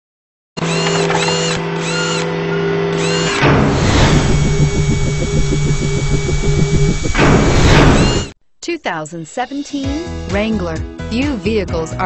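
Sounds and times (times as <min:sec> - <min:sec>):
steady electronic tones: 0:00.7 - 0:08.4
rhythmic mechanical buzzing: 0:03.0 - 0:08.4
quick sweeping effects: 0:03.6 - 0:08.4.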